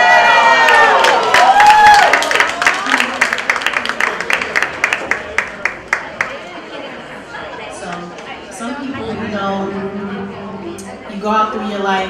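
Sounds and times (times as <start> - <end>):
audience applause: 0.3 - 6.3
crowd chatter: 2.5 - 12.0.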